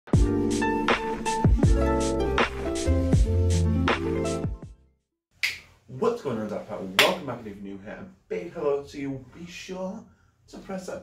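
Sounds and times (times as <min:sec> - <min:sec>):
intro jingle with steady beat: 0:00.2 - 0:04.8.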